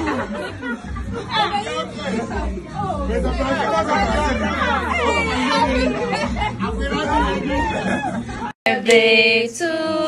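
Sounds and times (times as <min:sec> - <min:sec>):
people talking excitedly: 0:01.1 - 0:08.5.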